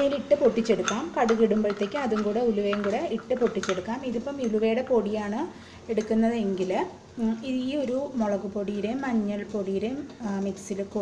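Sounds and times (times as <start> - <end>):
spoon scraping in glass bowl: 0.0 - 4.9
woman speaking: 0.0 - 11.0
spoon clinking against glass: 0.6 - 4.6.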